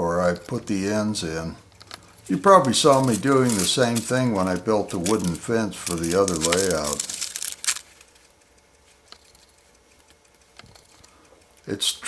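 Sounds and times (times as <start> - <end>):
paper rustling and crinkling: 2.2 - 10.2.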